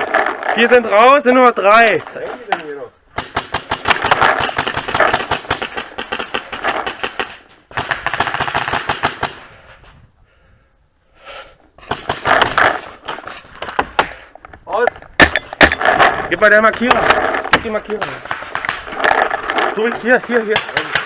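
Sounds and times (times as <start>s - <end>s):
paintball markers firing rapidly: 3.1s - 9.4s, 20.5s - 21.0s.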